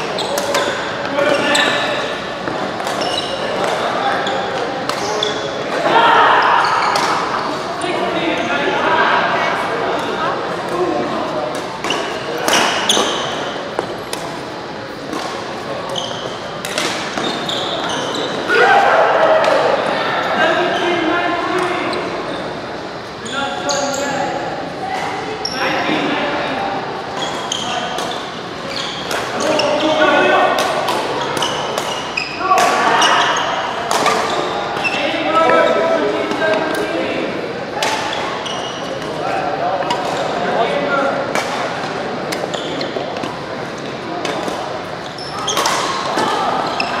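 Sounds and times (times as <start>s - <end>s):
shoes squeaking on court: 0.0s - 5.6s, 11.6s - 14.4s, 15.0s - 18.5s, 23.2s - 24.2s, 27.1s - 36.8s, 38.0s - 39.2s, 42.3s - 43.4s, 44.2s - 47.0s.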